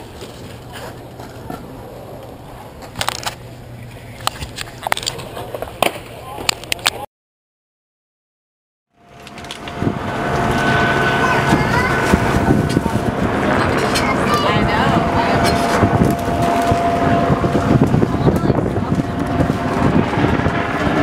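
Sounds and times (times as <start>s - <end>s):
road and engine noise: 8.9s - 21.0s
steady thin whine: 8.9s - 21.0s
indistinct passenger voices: 9.1s - 21.0s
wind on microphone: 9.1s - 21.0s.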